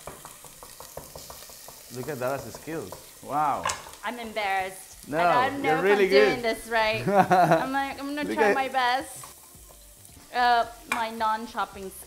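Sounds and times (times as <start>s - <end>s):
onion sizzling in a saucepan: 0.0s - 12.0s.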